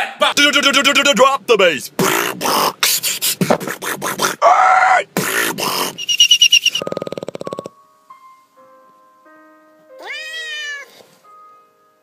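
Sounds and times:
beatboxing bass drop: 0:02.0 - 0:04.4, 0:05.2 - 0:07.7.

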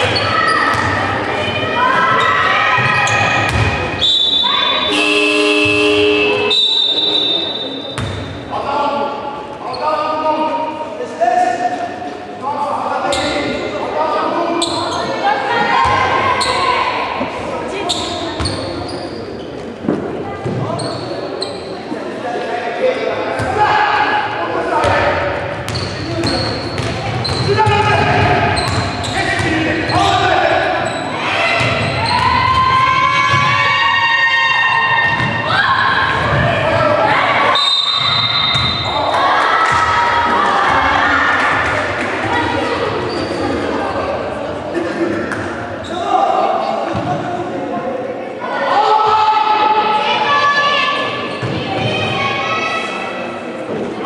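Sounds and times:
voices calling out: 0:00.0 - 0:08.0.

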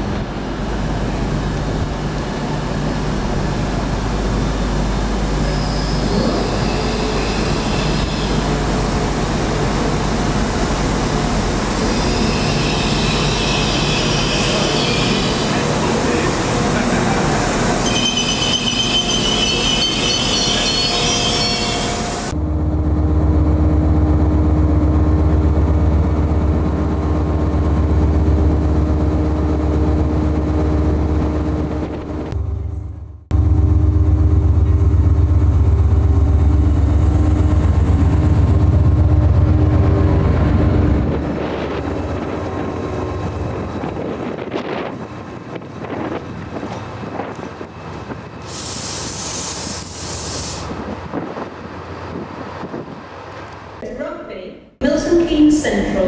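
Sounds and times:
diesel locomotive engine throb: 0:00.0 - 0:53.8
distant train: 0:00.0 - 0:54.1
train squealing: 0:05.2 - 0:08.8, 0:11.7 - 0:22.4, 0:46.7 - 0:50.8.

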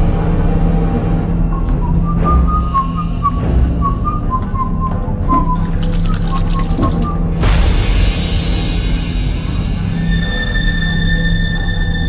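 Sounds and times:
eerie horror music drone: 0:00.0 - 0:05.3, 0:07.4 - 0:12.0
slow whistled melody: 0:01.4 - 0:07.2.

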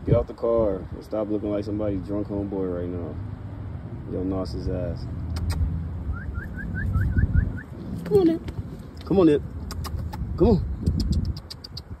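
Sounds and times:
low vehicle rumble: 0:00.0 - 0:12.0
rapid short rising chirps: 0:05.3 - 0:07.8.

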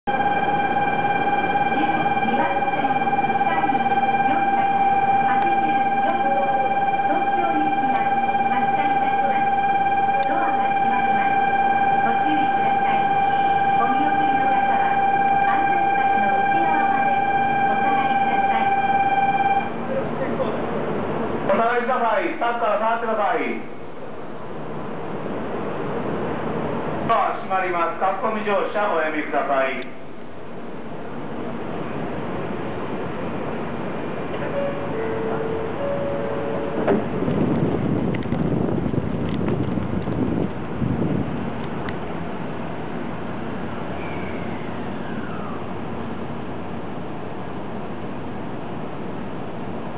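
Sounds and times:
steady electronic tone: 0:00.1 - 0:19.8
train pulling out: 0:00.1 - 0:21.6, 0:30.1 - 0:49.9.

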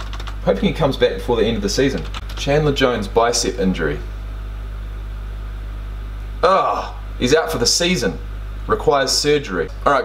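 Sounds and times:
low hum with hiss: 0:00.0 - 0:10.0.

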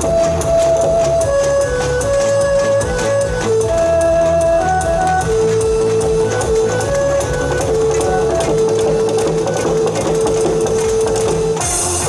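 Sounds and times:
loud backing music track: 0:00.0 - 0:12.0
drum kit struck: 0:10.0 - 0:12.0.

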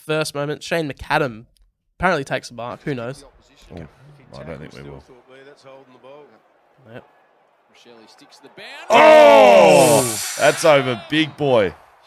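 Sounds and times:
men falling ooh: 0:08.9 - 0:10.4.

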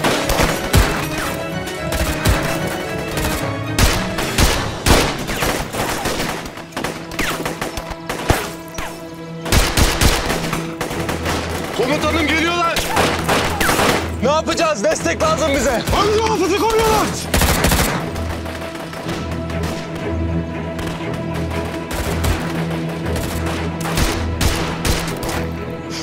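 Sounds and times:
rifle shots and bursts: 0:00.0 - 0:08.8, 0:09.4 - 0:12.0, 0:12.8 - 0:14.1, 0:17.2 - 0:20.0, 0:21.6 - 0:25.5
dramatic background music: 0:00.0 - 0:26.0.

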